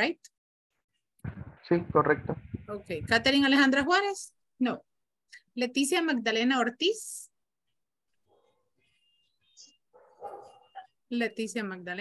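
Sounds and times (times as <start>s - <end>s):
faint dog barking: 8.2s - 9.0s, 9.9s - 11.0s.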